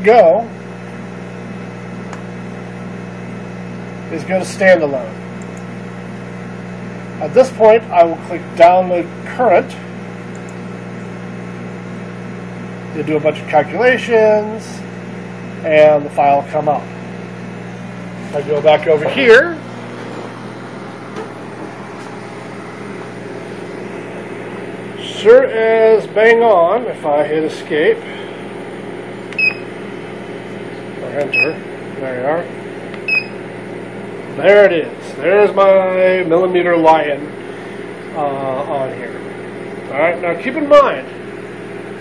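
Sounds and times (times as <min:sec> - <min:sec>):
equipment humming: 0:00.0 - 0:42.0
fan-like hiss of equipment: 0:26.2 - 0:28.6.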